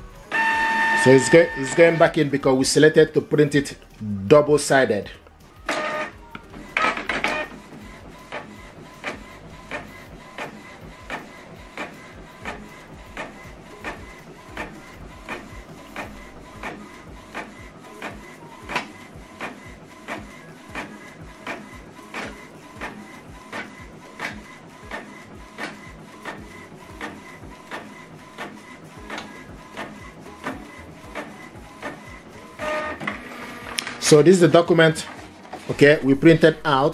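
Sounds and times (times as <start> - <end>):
printer mechanism ticking: 5.2 - 36.8
printer clunks: 6.7 - 7.6.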